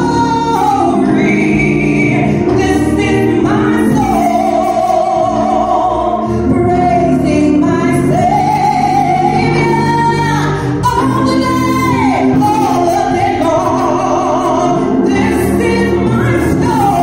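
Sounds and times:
woman singing gospel: 0:00.0 - 0:17.0.

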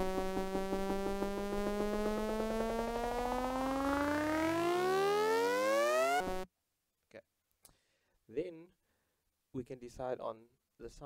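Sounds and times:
sawtooth synth riser sweeping upward: 0:00.0 - 0:06.4.

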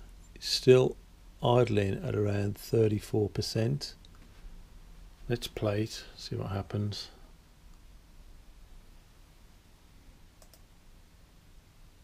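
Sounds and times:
low steady hum: 0:00.0 - 0:12.0
faint computer clicks: 0:10.4 - 0:10.7.

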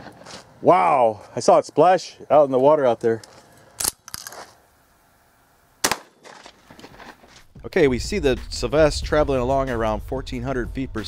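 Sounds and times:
shotgun shot with echo: 0:05.8 - 0:06.2.

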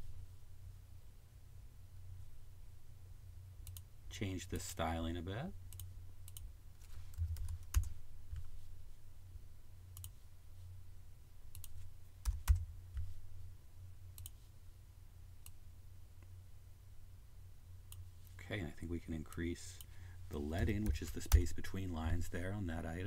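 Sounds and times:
low steady hum: 0:00.0 - 0:23.0
man talking: 0:04.1 - 0:05.6, 0:18.4 - 0:23.0.

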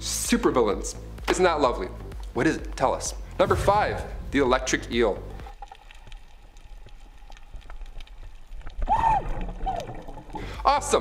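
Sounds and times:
low underwater rumble: 0:03.4 - 0:10.6
sharp clicks and crackles: 0:05.4 - 0:10.4.

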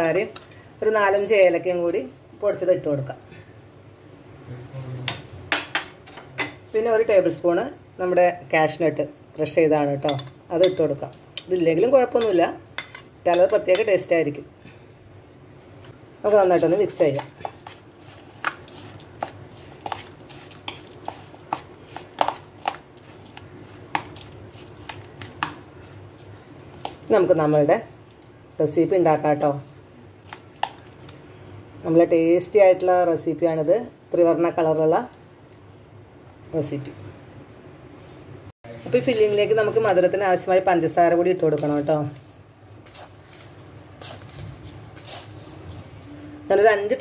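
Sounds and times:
spoon clinking on kitchenware: 0:10.0 - 0:10.9, 0:12.2 - 0:14.0
spoon scraping plastic bowl: 0:17.4 - 0:23.4.

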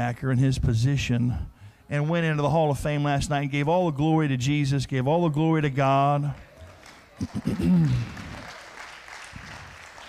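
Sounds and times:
congregation applauding: 0:06.4 - 0:10.0.

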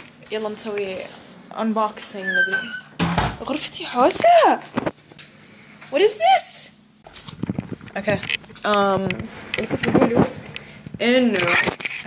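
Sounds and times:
woman's voice sliding in pitch: 0:02.0 - 0:02.9.

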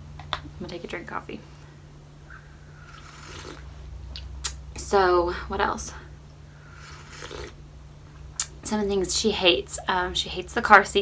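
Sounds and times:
low hum: 0:00.0 - 0:10.8
sip from mug: 0:02.8 - 0:03.7, 0:06.8 - 0:07.6.

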